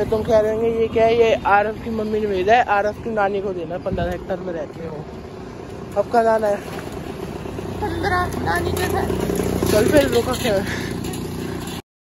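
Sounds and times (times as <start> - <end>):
street noise: 0.0 - 11.8.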